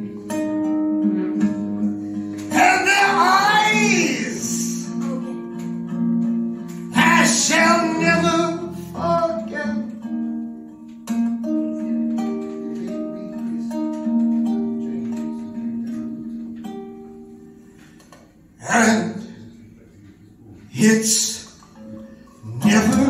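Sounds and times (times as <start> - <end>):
acoustic guitar picking: 0.0 - 23.0
person singing: 2.4 - 5.4, 6.9 - 10.2, 22.4 - 23.0.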